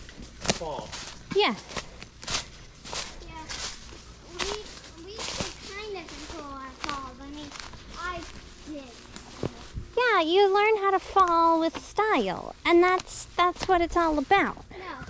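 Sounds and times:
footsteps outdoors: 0.0s - 15.0s.

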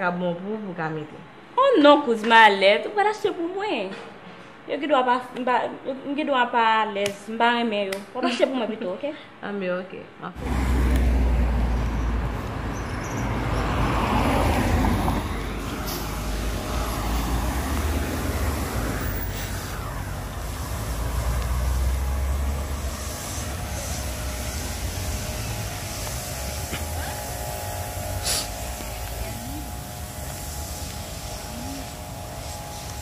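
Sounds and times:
road traffic noise: 10.4s - 33.0s.

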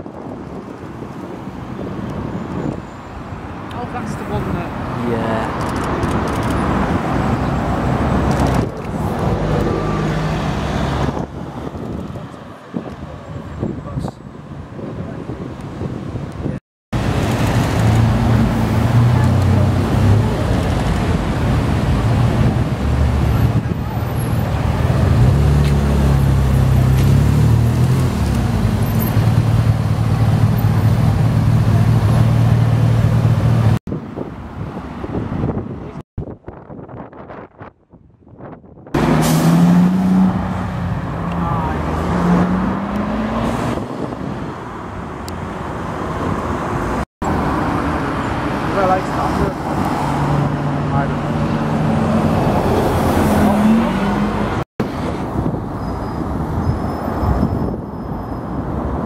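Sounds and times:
bus and cars pulling away: 0.1s - 15.1s, 17.0s - 35.6s, 39.0s - 59.0s.

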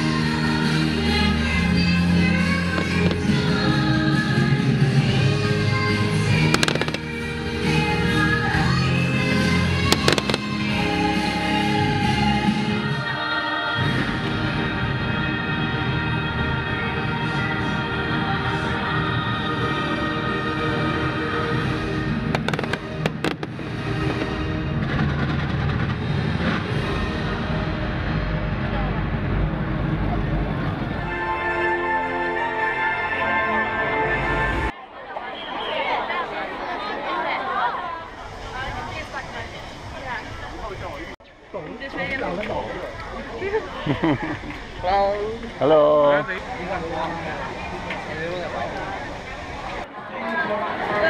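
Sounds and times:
steady music: 0.0s - 29.6s
crowd voices: 0.0s - 51.0s
fireworks low rumble: 0.9s - 12.8s, 21.0s - 31.1s
fireworks bangs and crackles: 2.7s - 4.2s, 6.4s - 7.4s, 9.8s - 10.8s, 22.1s - 26.8s.

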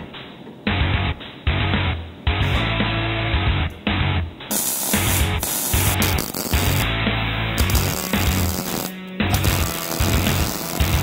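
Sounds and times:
background music with bass: 0.0s - 11.0s
welding arc hissing and crackling: 4.5s - 6.9s, 7.6s - 11.0s.

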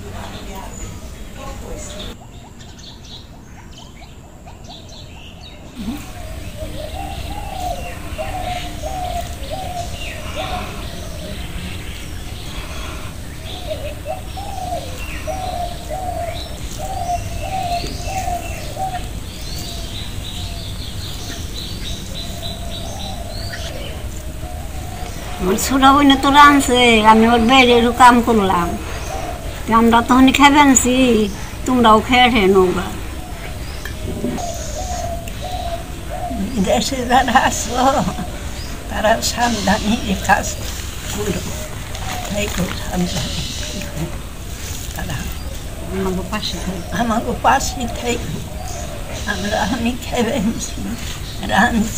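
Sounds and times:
low steady background hum: 0.0s - 51.9s.

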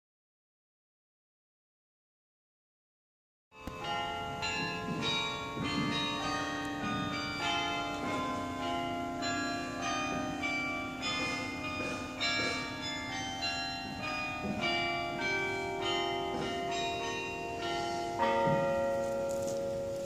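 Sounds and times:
church bells ringing: 3.6s - 20.0s.

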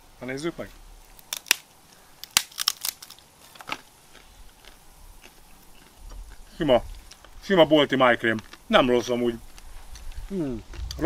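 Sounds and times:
crackers cracking and crunching: 0.9s - 11.0s.

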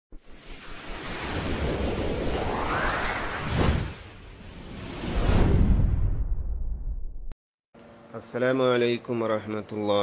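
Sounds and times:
whoosh sound effect: 0.2s - 6.7s.

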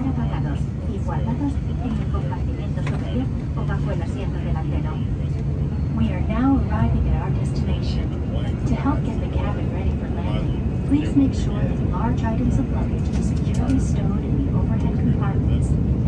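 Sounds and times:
airplane cabin engine drone: 0.0s - 16.0s.

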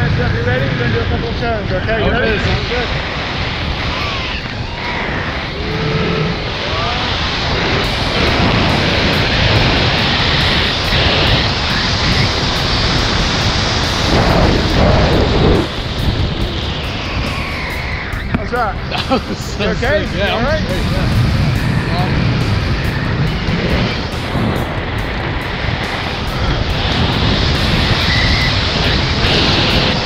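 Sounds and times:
loud wind rushing over microphone: 0.0s - 30.0s.

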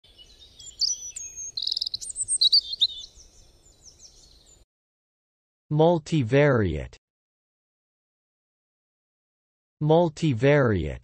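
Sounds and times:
bird trill: 0.1s - 4.6s
birds singing and chirping: 0.1s - 4.6s.

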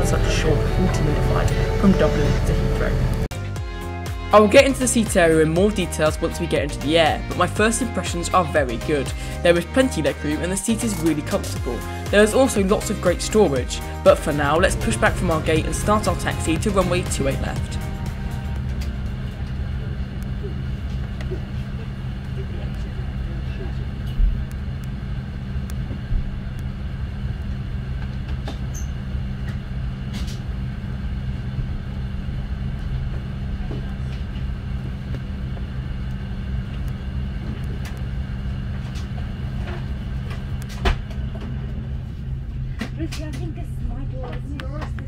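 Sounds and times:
thin even whine: 0.0s - 42.8s
jet engines idling: 0.0s - 45.0s.

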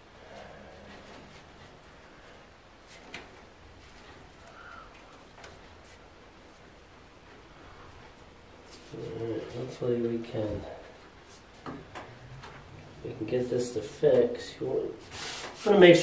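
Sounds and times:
low room noise: 0.0s - 16.0s.

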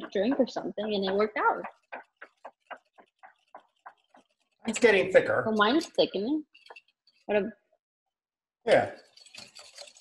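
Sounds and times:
hand whisk beating cream: 0.0s - 6.9s, 8.7s - 10.0s.

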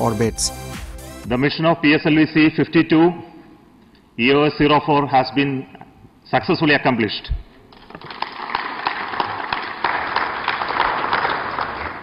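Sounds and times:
people applauding: 7.8s - 12.0s.

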